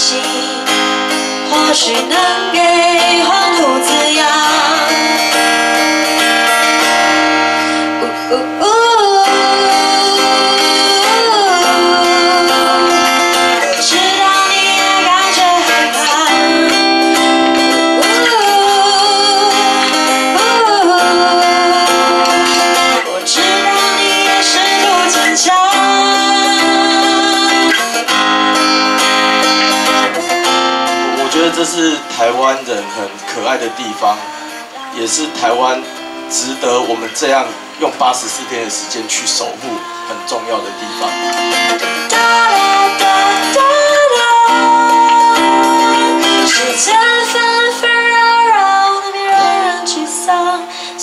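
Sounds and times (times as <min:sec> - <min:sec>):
acoustic guitar: 0:00.0 - 0:51.0
woman singing: 0:00.0 - 0:51.0.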